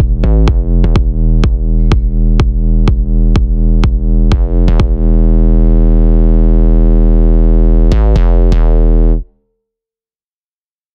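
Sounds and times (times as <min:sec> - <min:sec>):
sustained synthesizer chord: 0:00.0 - 0:09.2
deep bass note: 0:00.0 - 0:09.3.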